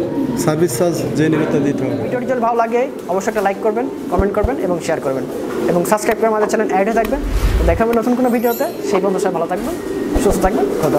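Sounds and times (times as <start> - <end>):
pigeons cooing: 0.0 - 10.9
man talking: 5.8 - 9.7.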